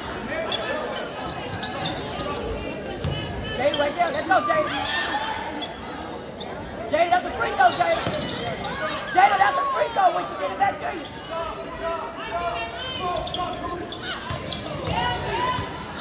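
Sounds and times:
spectators' voices and shouts: 0:00.0 - 0:16.0.

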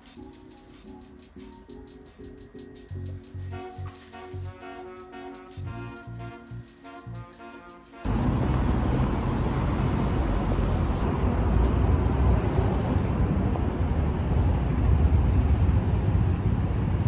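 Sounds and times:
low rumble of road traffic: 0:08.0 - 0:17.0.

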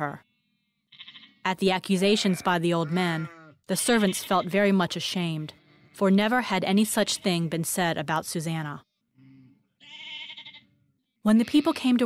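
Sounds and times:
sheep bleating: 0:00.9 - 0:01.4, 0:02.0 - 0:04.6, 0:09.2 - 0:12.0.

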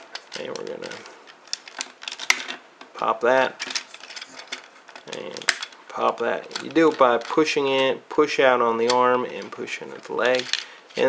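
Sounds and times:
plastic toy parts clicking and rattling: 0:00.0 - 0:07.9, 0:08.8 - 0:11.0.

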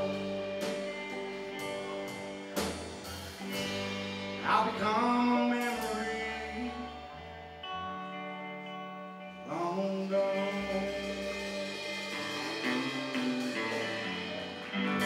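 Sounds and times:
drum kit: 0:00.0 - 0:07.6, 0:10.0 - 0:15.0
electric bass: 0:00.0 - 0:15.0
electric guitars: 0:00.0 - 0:15.0.

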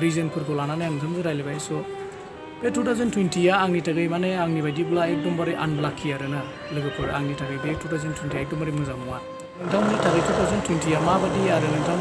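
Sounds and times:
background music with held tones: 0:00.0 - 0:12.0
man speaking: 0:09.6 - 0:12.0.

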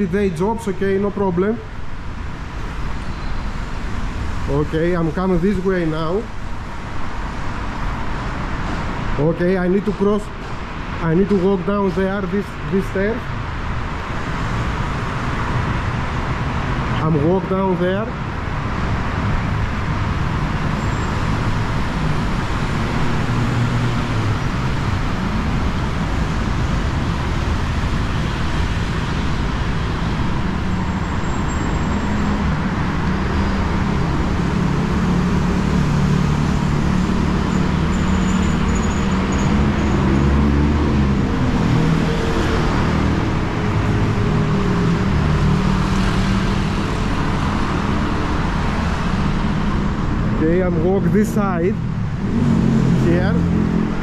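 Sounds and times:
road traffic passing: 0:00.0 - 0:54.0.

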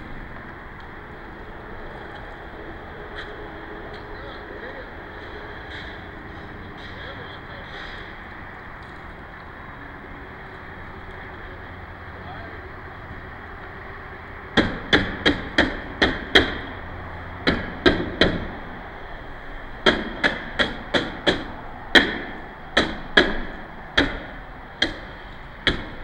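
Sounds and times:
steady background hum: 0:00.0 - 0:26.0
sharp hammer-like knocking: 0:14.6 - 0:16.7, 0:17.4 - 0:18.5, 0:19.8 - 0:26.0.

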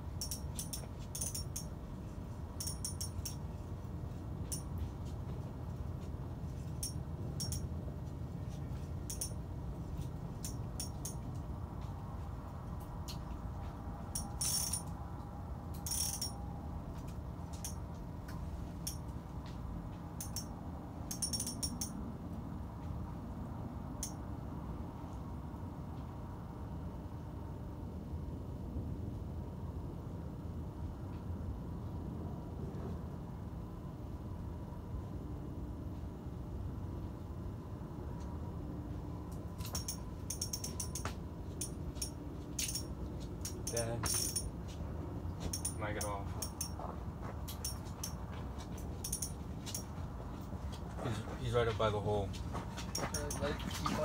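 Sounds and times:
fishing reel gears ticking: 0:00.2 - 0:01.7, 0:02.6 - 0:03.4, 0:09.1 - 0:09.3, 0:14.2 - 0:14.9, 0:15.8 - 0:16.4, 0:21.1 - 0:21.9, 0:39.7 - 0:41.0.

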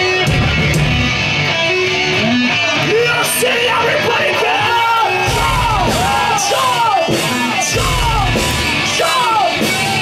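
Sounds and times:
bass and drums: 0:00.0 - 0:10.0
distorted guitar: 0:00.0 - 0:10.0
pop-punk band playing: 0:00.0 - 0:10.0
person yelling vocals: 0:02.9 - 0:10.0.

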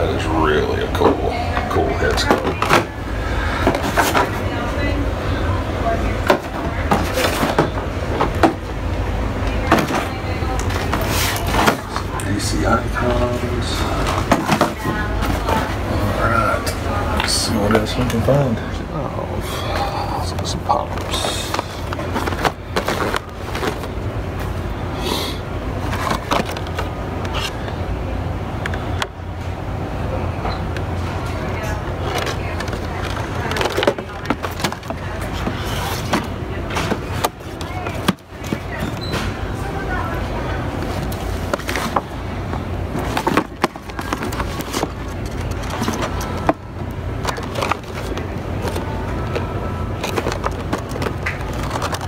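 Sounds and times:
toy boxes clicking and knocking: 0:20.9 - 0:23.9, 0:25.8 - 0:27.5, 0:32.0 - 0:39.0, 0:43.0 - 0:46.6, 0:47.2 - 0:52.0.

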